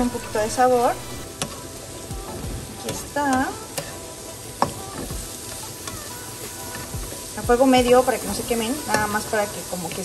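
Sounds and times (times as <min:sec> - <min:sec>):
mushrooms sizzling in oil: 0:00.0 - 0:10.0
spatula stirring in a pan: 0:01.3 - 0:10.0.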